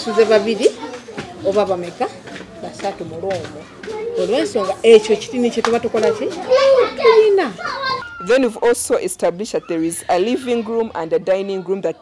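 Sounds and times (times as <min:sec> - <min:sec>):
woman talking: 0:00.0 - 0:00.8, 0:01.4 - 0:03.6, 0:04.2 - 0:06.3, 0:08.2 - 0:12.0.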